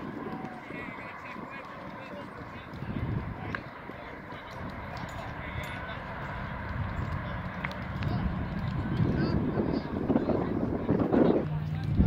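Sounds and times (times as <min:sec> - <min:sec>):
distant voices: 0:00.0 - 0:12.0
low outdoor rumble: 0:00.0 - 0:12.0.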